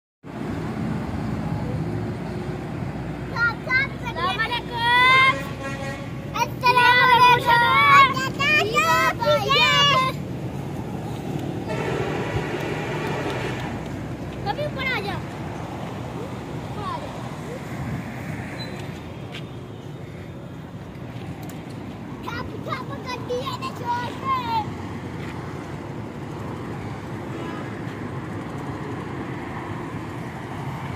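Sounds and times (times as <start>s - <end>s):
vehicle and road rumble: 0.2s - 30.9s
faint car horn: 5.2s - 6.2s, 11.6s - 13.8s.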